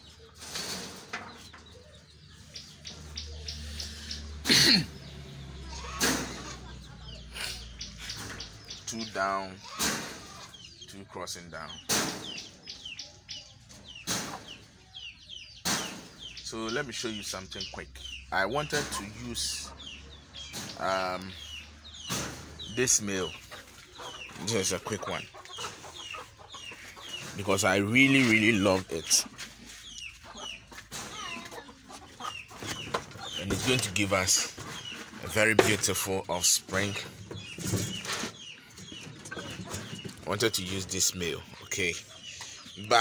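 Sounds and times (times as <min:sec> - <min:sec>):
small birds chirping: 0:00.0 - 0:43.0.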